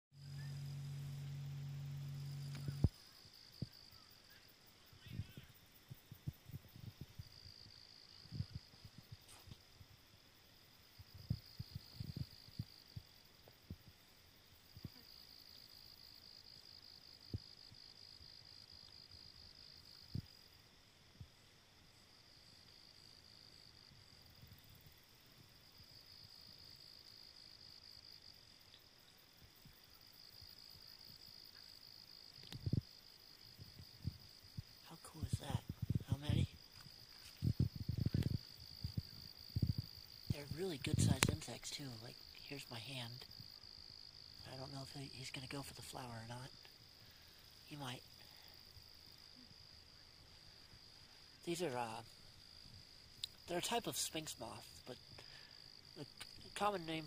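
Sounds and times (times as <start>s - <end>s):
low steady hum: 0.1s - 57.0s
crickets chirping: 0.2s - 57.0s.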